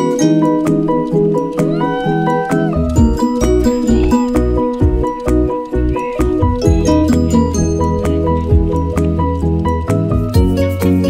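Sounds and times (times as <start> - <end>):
background music with steady beat: 0.0 - 11.0
heavy bass line: 1.7 - 10.4.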